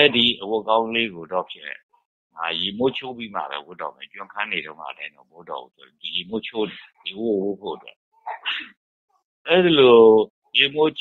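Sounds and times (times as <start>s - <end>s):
man preaching: 0.0s - 8.0s.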